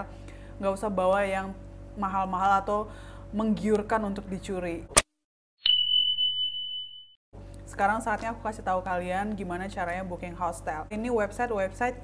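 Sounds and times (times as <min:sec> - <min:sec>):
notification bell ding: 0:05.6 - 0:07.2.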